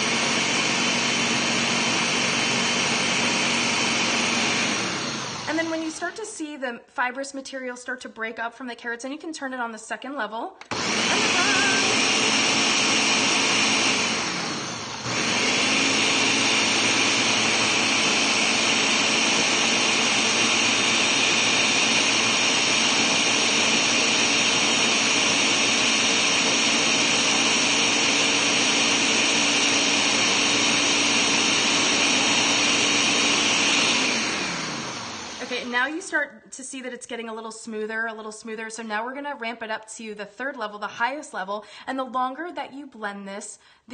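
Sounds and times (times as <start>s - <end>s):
blender running: 0.0s - 6.2s, 10.6s - 36.0s.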